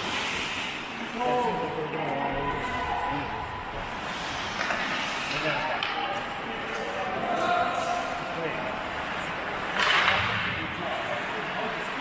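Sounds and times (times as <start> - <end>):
skate blades on ice: 0.0 - 1.0
hockey sticks and puck clicking: 4.5 - 8.1, 9.6 - 10.3.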